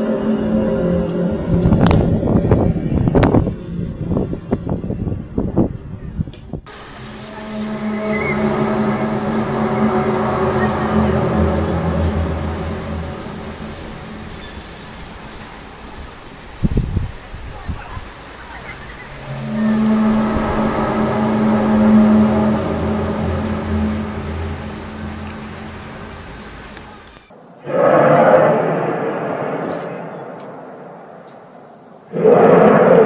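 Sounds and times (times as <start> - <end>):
low steady droning: 6.7 - 16.4, 18.5 - 33.0.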